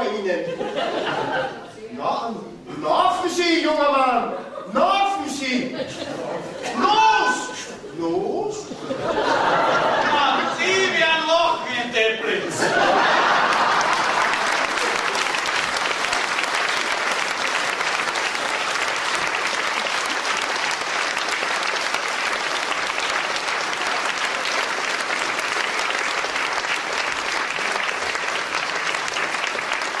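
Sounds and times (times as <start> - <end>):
audience applauding: 12.6 - 30.0.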